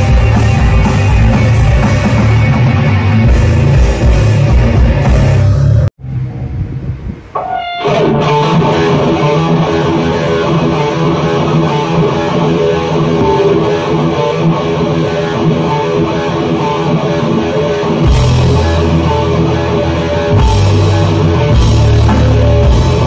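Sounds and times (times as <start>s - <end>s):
heavy metal band playing: 0.0s - 5.9s, 7.4s - 23.0s.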